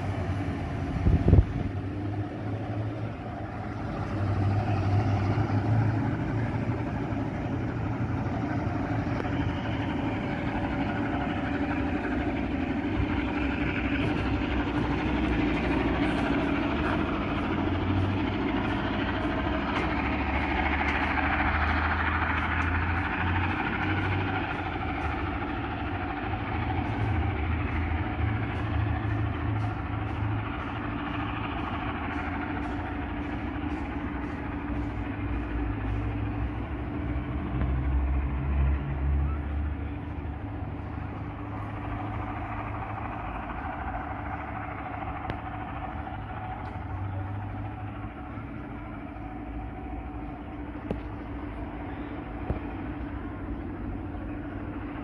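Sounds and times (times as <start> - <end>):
passenger train rumbling: 0.0 - 55.0.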